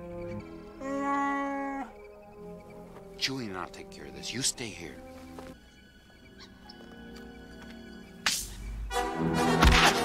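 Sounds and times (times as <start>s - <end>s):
soft orchestral film score: 0.0s - 10.0s.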